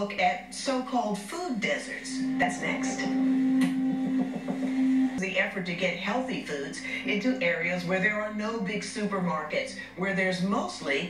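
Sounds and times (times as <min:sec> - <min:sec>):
low synthesized drone: 0:02.0 - 0:05.3.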